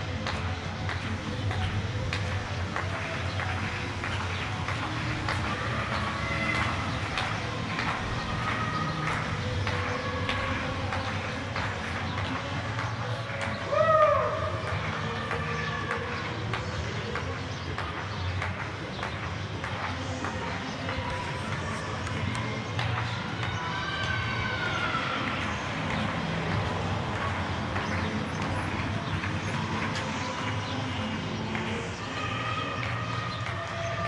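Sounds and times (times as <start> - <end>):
people calling and whistling: 0.0 - 34.0
scattered hand-clapping: 0.0 - 34.0.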